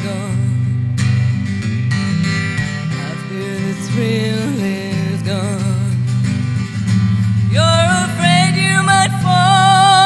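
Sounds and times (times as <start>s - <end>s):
woman singing: 0.0s - 0.6s, 2.9s - 6.0s, 7.4s - 10.0s
acoustic guitar chords: 0.0s - 10.0s.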